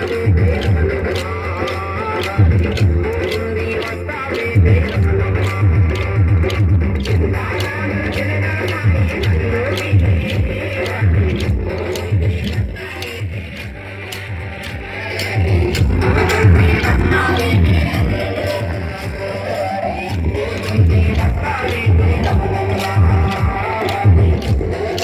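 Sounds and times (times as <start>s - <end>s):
heavy drum beat: 0.0s - 19.4s, 20.1s - 25.0s
person singing a melody: 0.0s - 25.0s.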